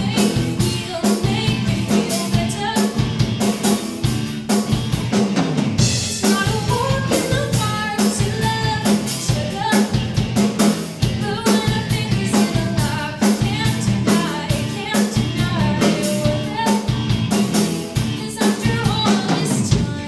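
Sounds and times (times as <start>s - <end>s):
bass guitar: 0.0s - 20.0s
drum kit beat: 0.0s - 20.0s
electric guitars: 0.0s - 20.0s.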